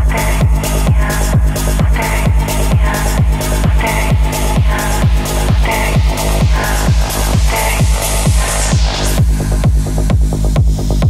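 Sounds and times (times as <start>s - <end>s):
techno music: 0.0s - 11.0s.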